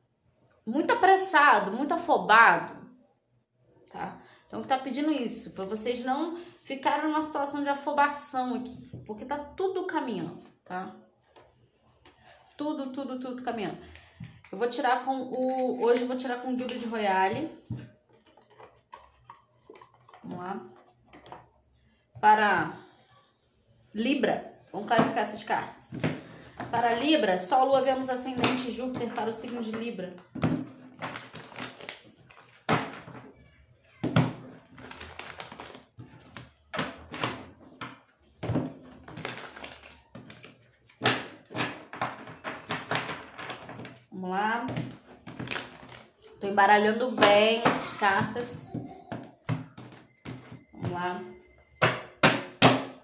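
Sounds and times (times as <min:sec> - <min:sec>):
cards being shuffled: 0:34.6 - 0:36.5, 0:38.9 - 0:41.0.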